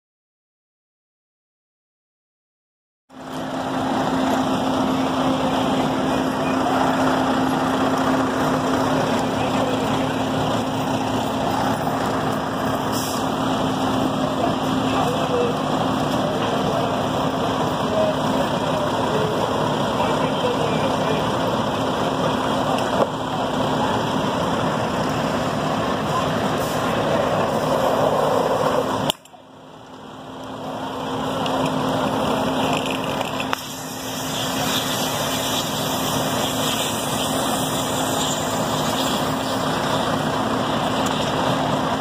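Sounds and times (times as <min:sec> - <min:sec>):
fire truck engines running: 0:03.1 - 0:42.0.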